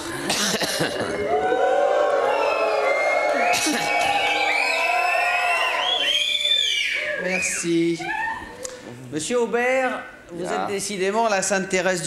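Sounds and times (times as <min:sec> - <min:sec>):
audience calling out and whooping: 0:01.1 - 0:08.9.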